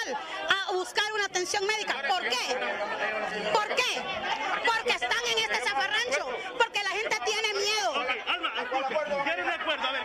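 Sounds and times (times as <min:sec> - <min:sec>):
overlapping voices talking: 0:00.0 - 0:10.0.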